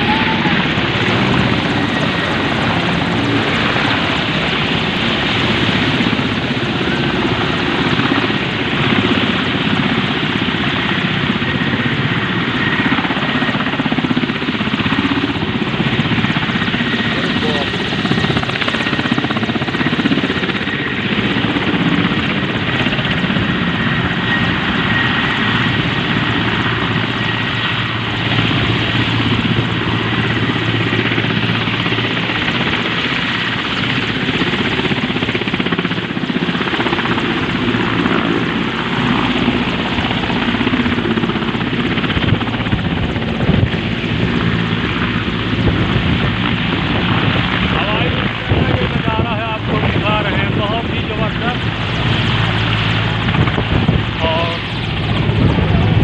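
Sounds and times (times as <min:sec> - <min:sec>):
helicopter rotor and engine: 0:00.0 - 0:56.0.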